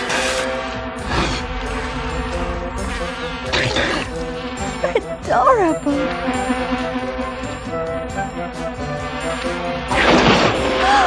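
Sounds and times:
cartoon wings buzzing: 0.0s - 11.0s.

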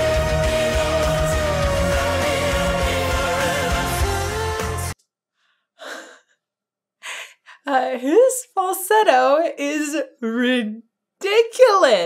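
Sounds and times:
woman sighing: 5.8s - 6.4s, 7.0s - 7.7s.

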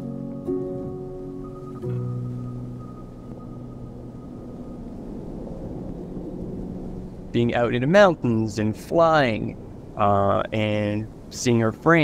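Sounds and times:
wind rushing over microphone: 0.8s - 12.0s.

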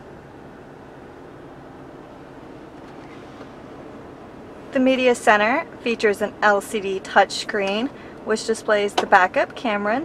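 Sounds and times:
faint background hum: 0.0s - 10.0s.

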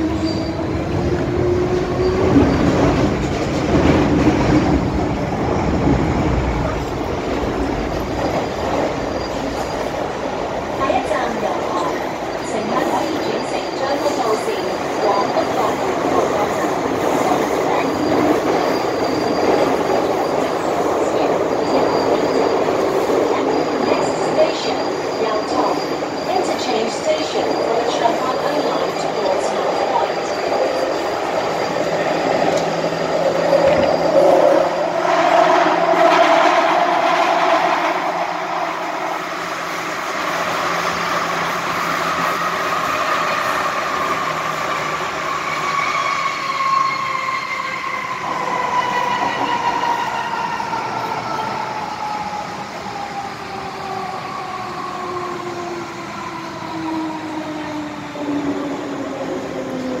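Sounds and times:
train wheel and rail noise: 0.0s - 60.0s.

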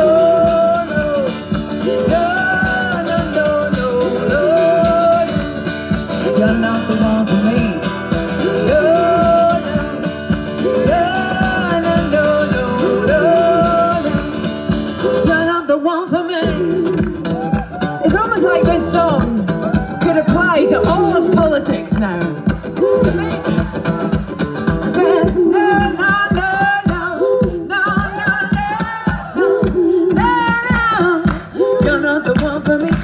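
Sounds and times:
strummed acoustic guitar: 0.0s - 15.7s, 16.4s - 33.0s
woman singing: 0.0s - 24.2s, 24.8s - 33.0s.

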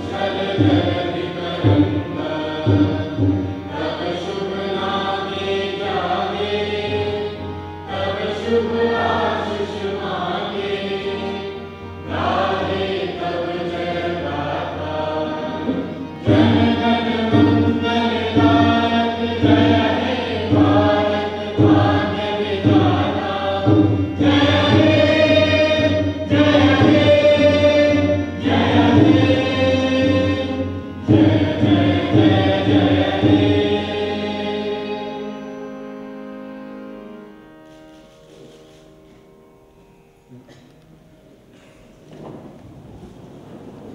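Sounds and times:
choir singing: 0.0s - 36.9s
instrumental accompaniment: 0.0s - 42.4s.

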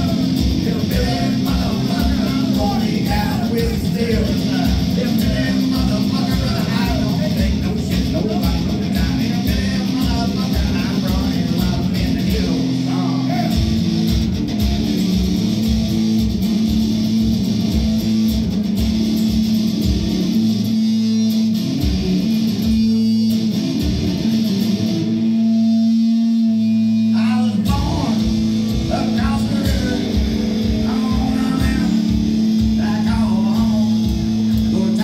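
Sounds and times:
amplified guitar: 0.0s - 35.0s.

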